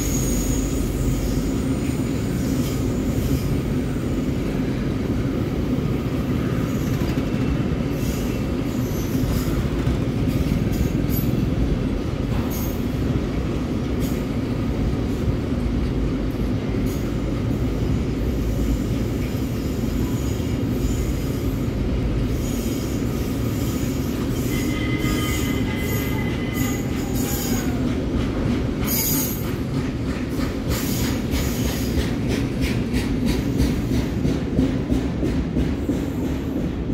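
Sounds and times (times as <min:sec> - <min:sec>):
train wheels rumbling on rail: 0:00.0 - 0:36.9
wheels clicking over rail joints: 0:25.6 - 0:36.9.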